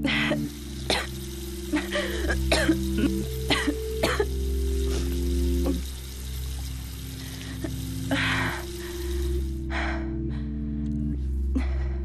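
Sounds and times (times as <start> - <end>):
tap water running: 0.0 - 9.8.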